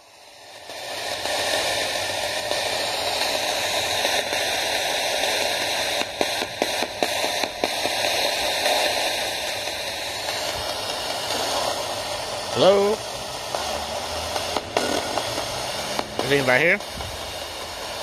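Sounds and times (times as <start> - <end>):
radio static sweeping stations: 10.3 - 17.2.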